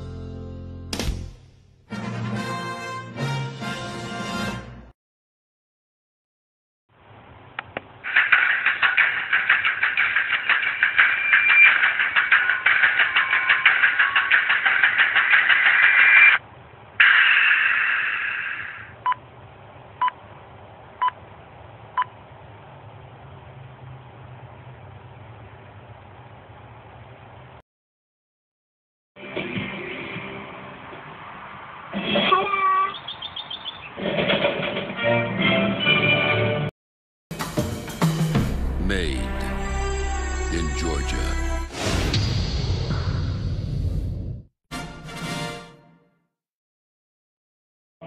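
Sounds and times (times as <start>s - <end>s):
tinny tv soundtrack music: 8.1s - 16.4s, 37.4s - 44.0s
logo music: 37.4s - 41.8s.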